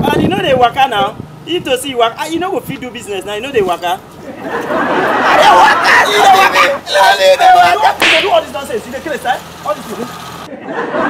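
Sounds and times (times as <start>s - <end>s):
sharp swish-like burst: 8.0s - 8.4s.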